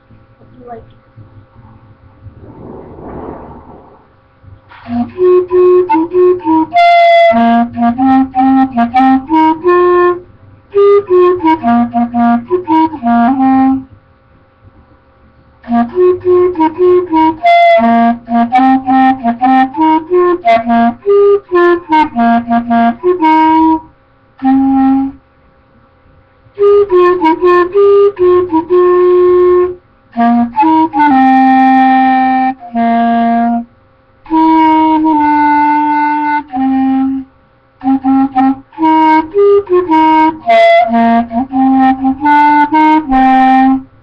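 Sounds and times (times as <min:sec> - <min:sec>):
clarinet melody: 0:04.8 - 0:13.9, 0:15.6 - 0:25.2, 0:26.5 - 0:43.9.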